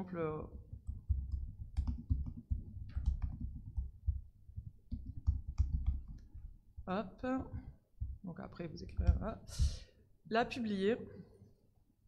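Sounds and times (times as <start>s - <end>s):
computer keyboard typing: 0.6s - 6.4s.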